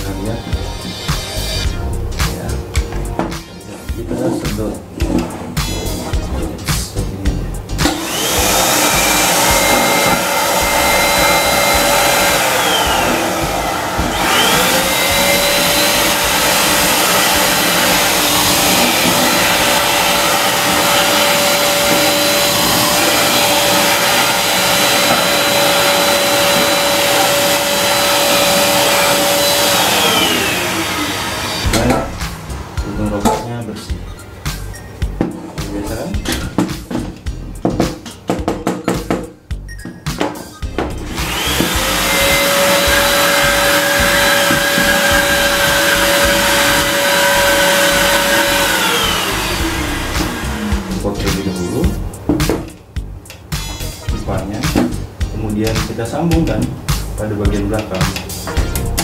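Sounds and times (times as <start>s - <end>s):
handheld vacuum cleaner whining: 7.8s - 32.2s, 41.0s - 51.6s.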